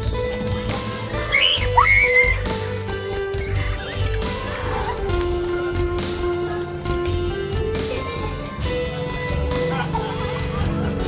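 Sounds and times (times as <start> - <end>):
background music with low beat: 0.0 - 11.0
high squeaky gliding sound: 1.3 - 2.5.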